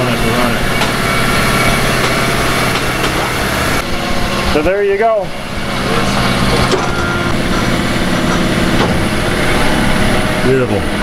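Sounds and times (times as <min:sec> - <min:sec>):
foam-slicing saw humming: 0:00.0 - 0:11.0.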